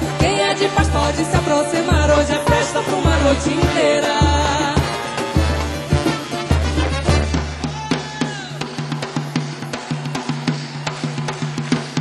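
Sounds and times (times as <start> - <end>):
drums and hand percussion: 0.0 - 12.0.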